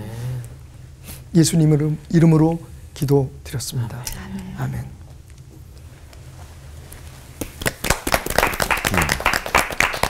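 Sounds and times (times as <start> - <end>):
audience clapping: 7.4 - 10.0.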